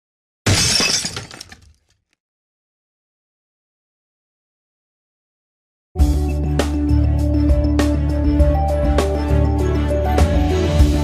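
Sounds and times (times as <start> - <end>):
glass shattering: 0.5 - 1.8.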